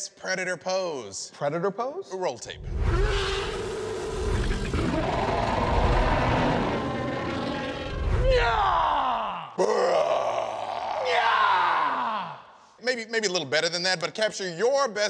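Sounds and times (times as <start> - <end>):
creature roar: 2.6 - 12.4
men yelling: 8.2 - 9.6, 10.2 - 12.4.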